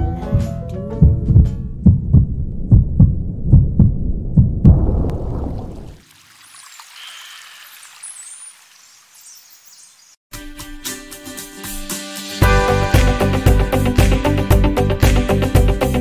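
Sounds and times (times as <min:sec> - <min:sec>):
fetal heartbeat: 0:01.0 - 0:04.9.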